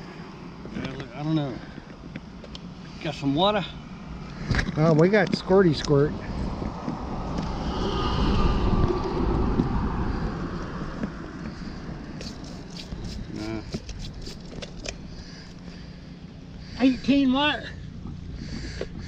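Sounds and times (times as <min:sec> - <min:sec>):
car passing: 0:05.1 - 0:12.5
wind on microphone: 0:06.1 - 0:14.4.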